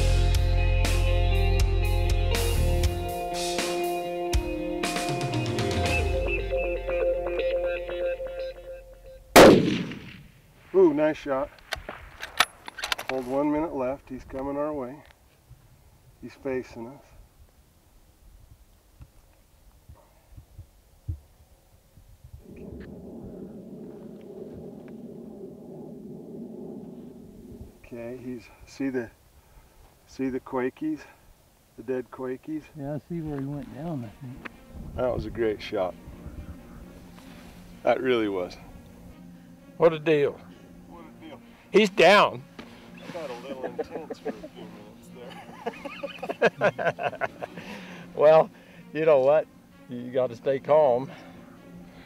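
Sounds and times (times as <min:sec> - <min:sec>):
rock music with guitar: 0:00.0 - 0:09.1
loud rifle shot: 0:09.4 - 0:10.4
wind buffeting microphone: 0:18.2 - 0:27.9, 0:34.5 - 0:37.2.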